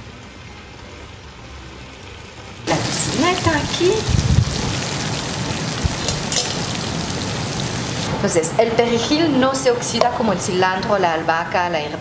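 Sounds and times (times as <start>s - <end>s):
sauce simmering in a pan: 2.7s - 8.2s.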